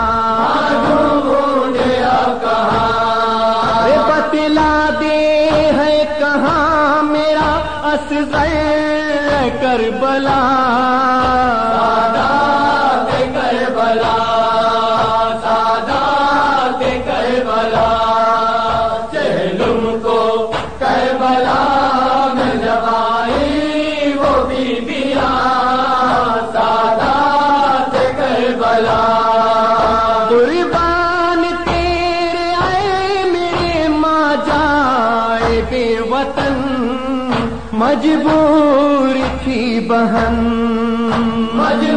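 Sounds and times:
person chanting a lament: 0:00.0 - 0:41.9.

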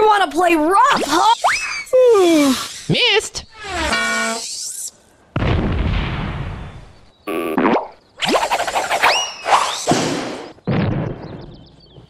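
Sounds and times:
cartoon crash: 0:03.5 - 0:04.5, 0:07.5 - 0:11.2.

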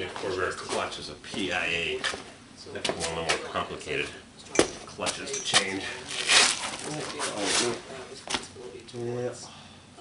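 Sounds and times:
man speaking: 0:00.0 - 0:09.7.

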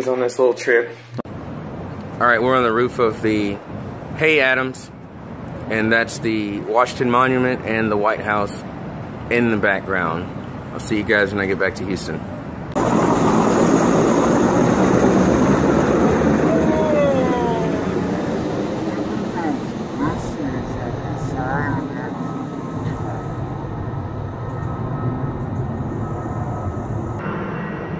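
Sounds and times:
helicopter flying overhead: 0:01.3 - 0:27.9.

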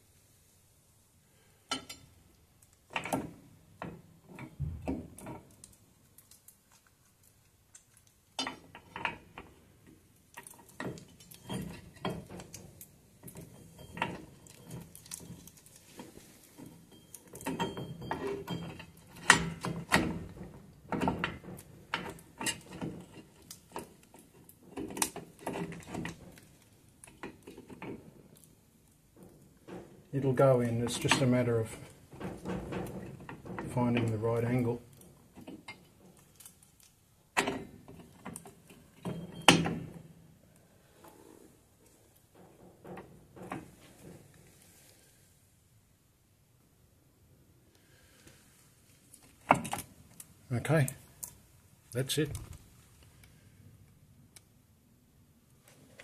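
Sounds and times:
metal clinks and scrapes: 0:10.3 - 0:40.2.

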